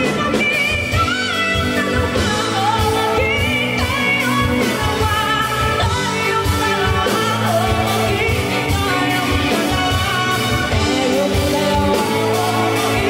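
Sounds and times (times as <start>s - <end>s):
live band with drums: 0.0s - 13.0s
woman singing with vibrato: 0.0s - 13.0s.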